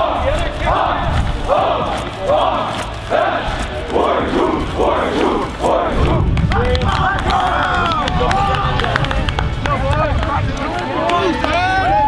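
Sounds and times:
players shouting in unison: 0:00.0 - 0:06.3.

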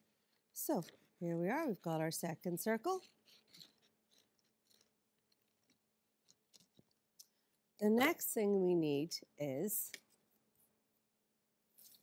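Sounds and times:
scissors cutting paper: 0:02.7 - 0:05.8.

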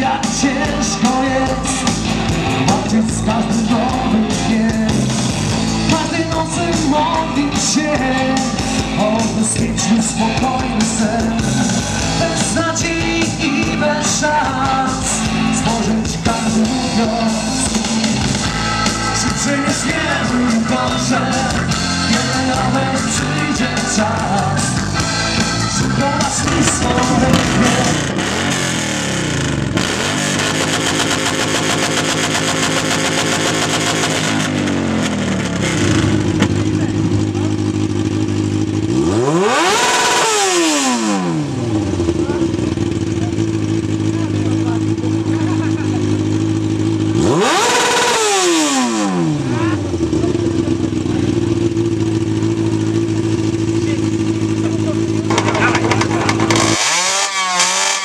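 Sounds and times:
motorcycle engine idling: 0:00.0 - 0:56.8
motorcycle engine revving: 0:00.0 - 0:58.0
second motorcycle revving: 0:00.0 - 0:58.0.

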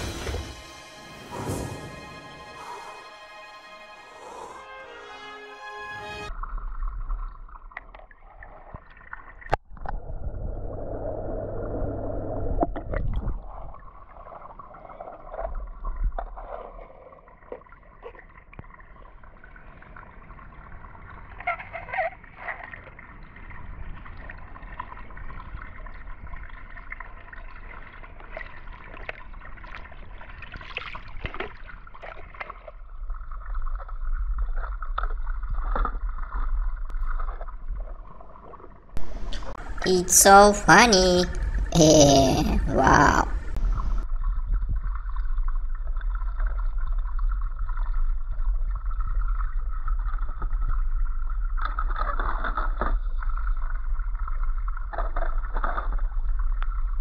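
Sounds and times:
low rumbles: 0:00.0 - 0:03.6
pool water gurgling: 0:06.3 - 0:57.0.

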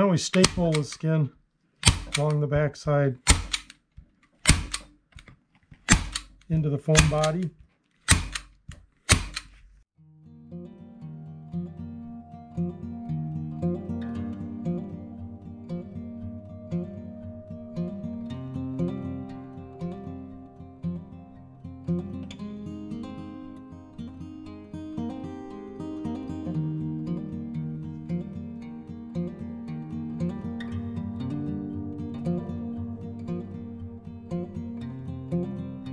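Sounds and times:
staple gun clacks: 0:00.3 - 0:01.0, 0:01.8 - 0:02.4, 0:03.3 - 0:09.6
acoustic guitar music: 0:10.0 - 0:35.9.

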